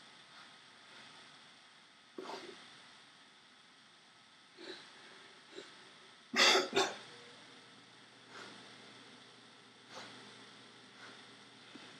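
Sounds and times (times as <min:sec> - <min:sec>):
man coughing: 0:06.4 - 0:07.0.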